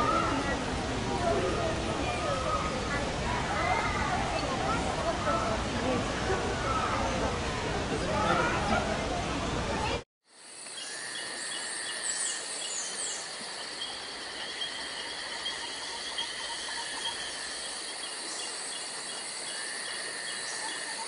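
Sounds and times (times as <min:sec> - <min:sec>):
insects chirping: 0:10.2 - 0:21.0
insects droning: 0:10.2 - 0:21.0.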